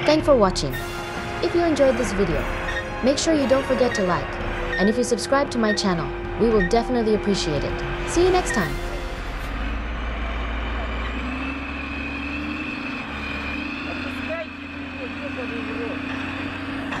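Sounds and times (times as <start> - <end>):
diesel engine running under load: 0.0 - 17.0.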